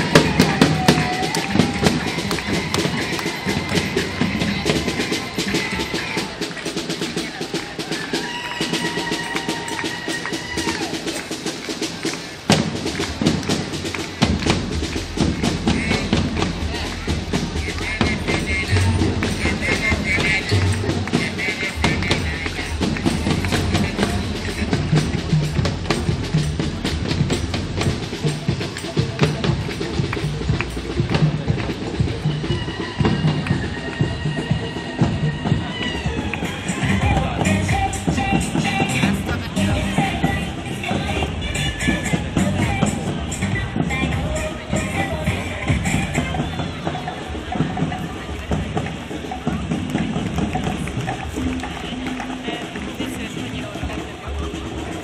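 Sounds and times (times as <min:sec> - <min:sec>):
crowd voices: 0:00.0 - 0:55.0
parade music with drums and brass: 0:00.0 - 0:55.0.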